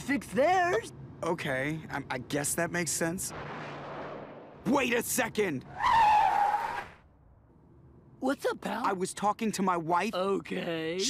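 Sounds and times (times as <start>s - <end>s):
car tyres screeching: 5.6s - 7.0s.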